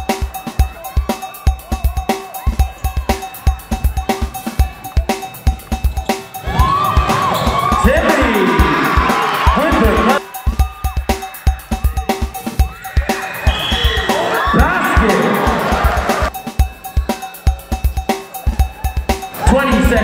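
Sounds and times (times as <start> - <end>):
music with driving drum beat: 0.0 - 20.0.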